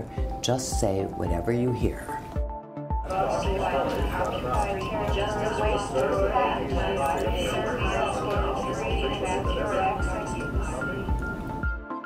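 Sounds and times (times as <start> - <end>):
background music with steady beat: 0.0 - 12.0
babble of many voices: 3.1 - 11.1.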